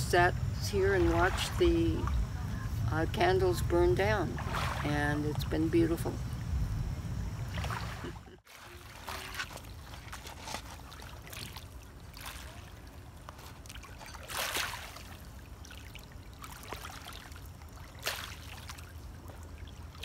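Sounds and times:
small waves lapping at shore: 0.0 - 6.2, 7.5 - 20.0.

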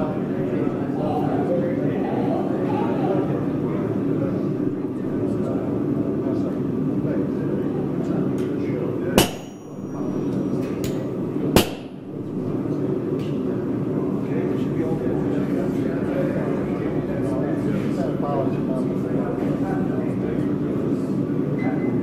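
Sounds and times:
low background noise: 0.0 - 22.0
hammer blows on steel: 9.2 - 10.1.

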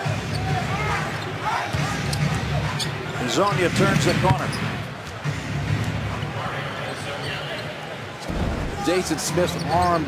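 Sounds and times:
crowd noise: 0.0 - 10.0
sneaker squeaks: 4.1 - 4.8.

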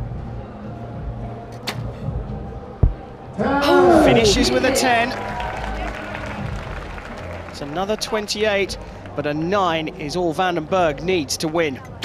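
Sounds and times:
low steady venue hum: 0.0 - 12.0
arrow thudding into target: 1.6 - 2.0.

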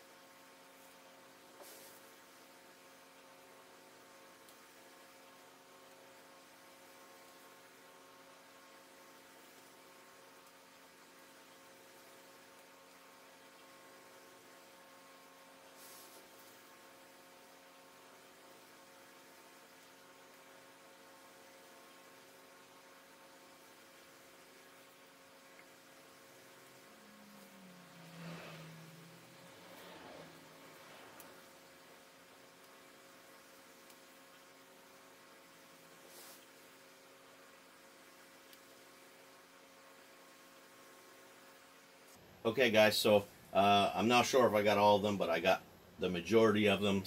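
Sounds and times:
faint electrical hum and hiss: 0.0 - 47.0.

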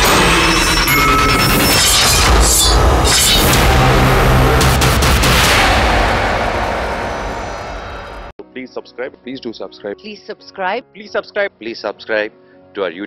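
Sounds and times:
heavy boom: 0.0 - 8.3
film trailer score: 0.0 - 13.0.

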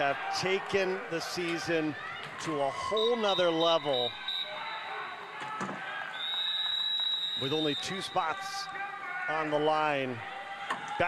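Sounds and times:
large hall background sound: 0.0 - 11.0.

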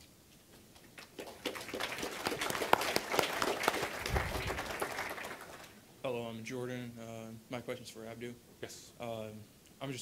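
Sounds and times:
audience applauding: 1.0 - 5.8.

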